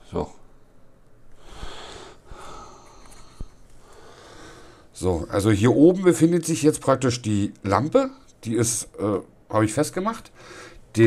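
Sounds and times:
person breathing softly: 1.4 - 5.0, 10.4 - 10.9.

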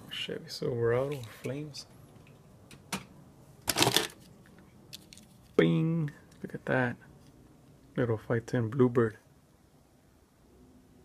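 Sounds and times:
metal toy cars clattering: 3.7 - 4.2.

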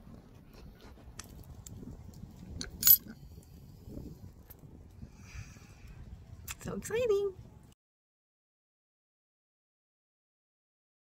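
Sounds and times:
key jingling: 2.8 - 3.0.

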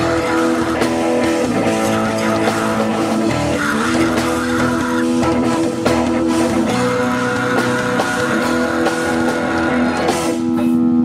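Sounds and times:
drums: 0.0 - 11.0
electric guitars sustained notes: 0.0 - 11.0
live rock band playing: 0.0 - 11.0.

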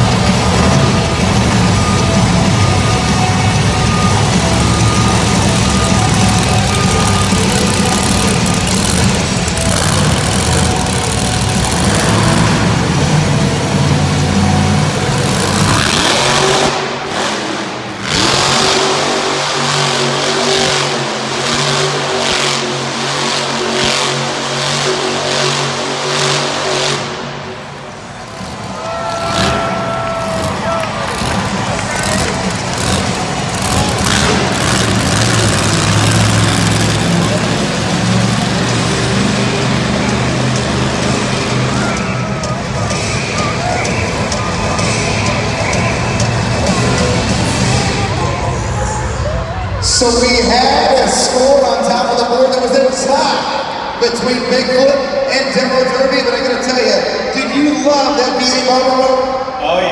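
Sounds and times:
truck engine roaring: 0.0 - 59.9.

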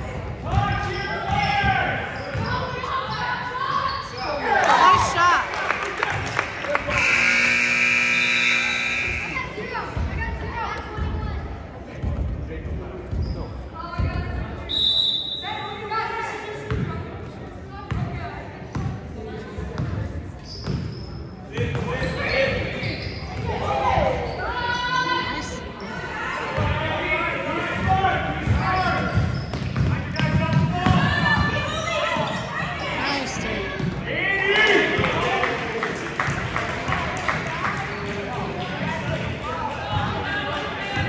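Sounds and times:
voices echoing in gym: 0.0 - 41.0.

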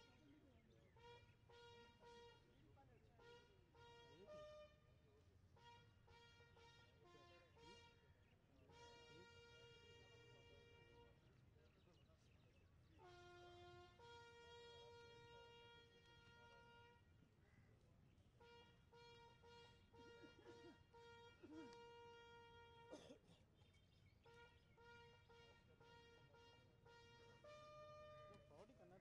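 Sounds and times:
faint bugle call: 0.9 - 11.4, 13.0 - 17.6, 18.4 - 23.3, 24.2 - 28.8.

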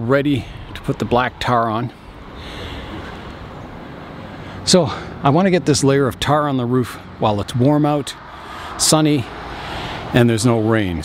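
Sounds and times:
low rumble: 0.0 - 6.8.

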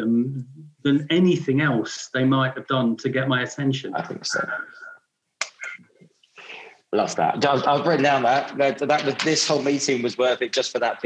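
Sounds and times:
mouth click: 5.4 - 5.8
soft breath: 6.3 - 6.9.

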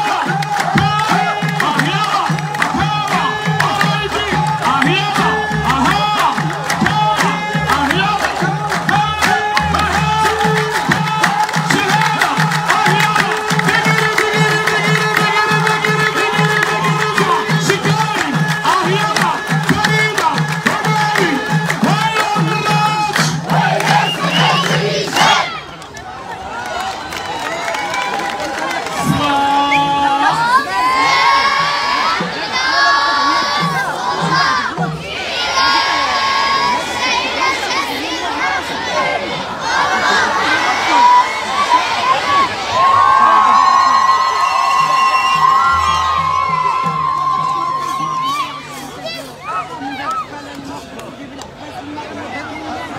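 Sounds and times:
fast hand-clapping: 0.0 - 24.8
drum strikes: 0.0 - 25.4, 43.7 - 48.7
men chanting in unison: 0.0 - 25.5
group shouting and cheering: 0.0 - 50.6.

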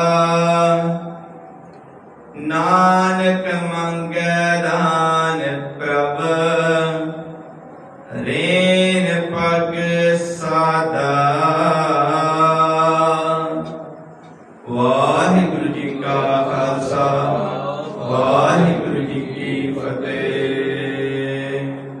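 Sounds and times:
man chanting drawn-out tones: 0.0 - 22.0.

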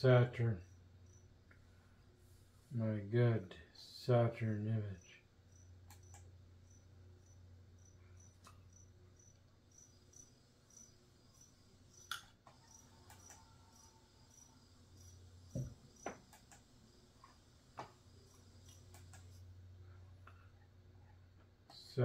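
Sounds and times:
low steady hum: 0.0 - 22.0
crickets chirping: 0.1 - 2.6, 3.6 - 22.0
clicks: 5.8 - 6.3, 12.0 - 13.5, 16.0 - 19.4
thump: 15.5 - 16.2.

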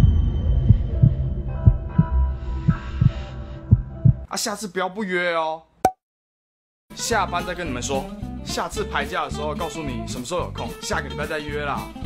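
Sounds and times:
heartbeat thumps: 0.7 - 4.3.

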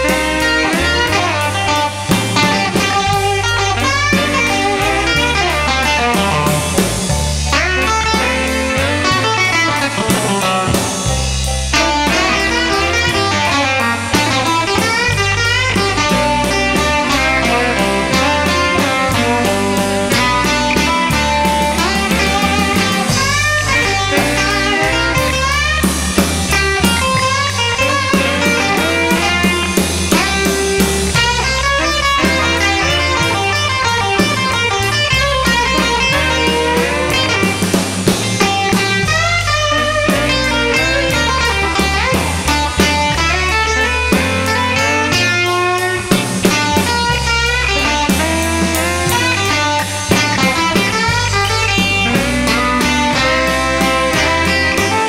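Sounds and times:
bass guitar: 0.0 - 55.0
drum kit: 0.0 - 55.0
electric guitar lead: 0.0 - 55.0.

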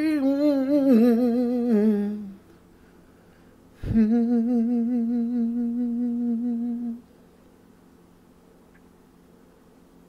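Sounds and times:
man humming a held note: 0.0 - 2.4, 3.8 - 7.1.

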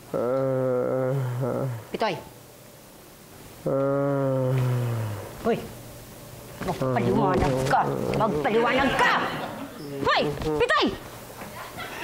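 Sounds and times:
deep voice drawn-out sound: 0.1 - 1.9, 3.6 - 5.3.

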